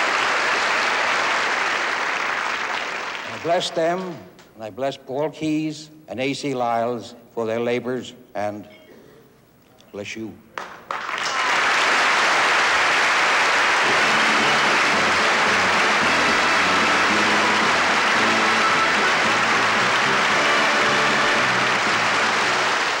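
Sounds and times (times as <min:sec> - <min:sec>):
large audience applauding: 0:00.0 - 0:03.5, 0:10.6 - 0:23.0
music: 0:13.6 - 0:23.0.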